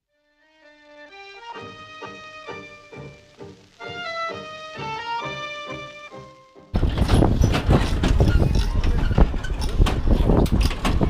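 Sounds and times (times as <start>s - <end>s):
pedal car rattling on road: 6.7s - 11.0s.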